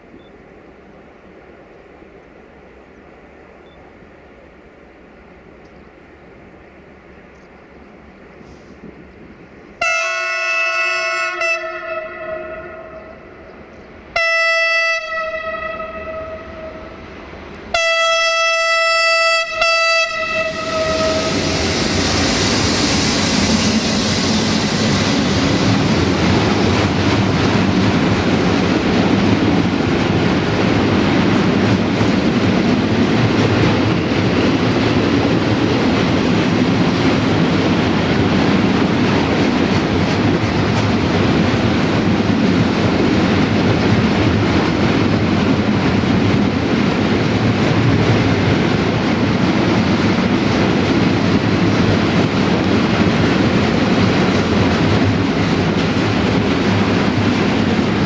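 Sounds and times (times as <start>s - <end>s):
locomotive horn: 9.8s - 13.3s, 14.1s - 17.0s, 17.7s - 21.4s
train wheels clattering: 38.2s - 58.0s.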